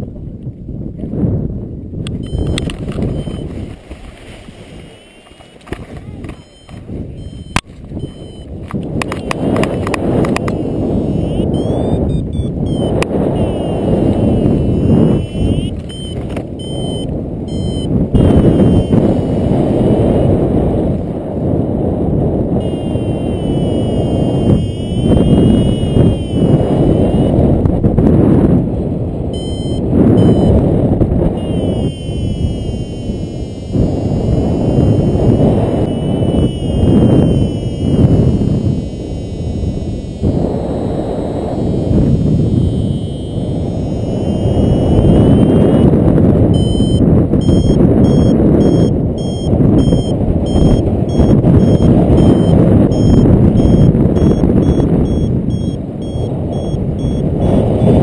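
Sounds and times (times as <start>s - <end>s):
wind buffeting microphone: 0.0s - 58.0s
variometer beeping: 2.0s - 3.6s, 4.9s - 5.5s, 6.2s - 20.4s, 22.4s - 27.6s, 29.2s - 58.0s.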